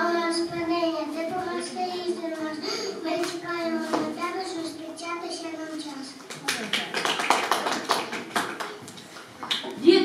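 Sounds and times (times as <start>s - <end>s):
audience clapping: 6.3s - 9.8s.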